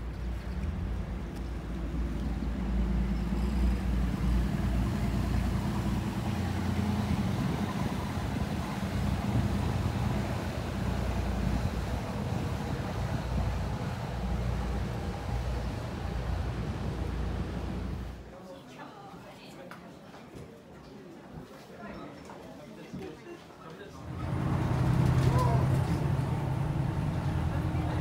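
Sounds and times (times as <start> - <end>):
boat engine humming: 0.0 - 18.2, 24.0 - 28.0.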